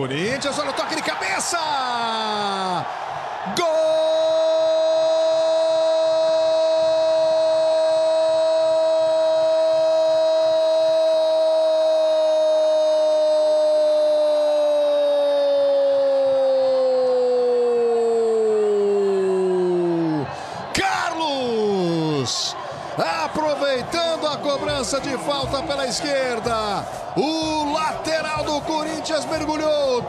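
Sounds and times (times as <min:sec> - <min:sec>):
man shouting long drawn-out cry: 0:03.5 - 0:21.2.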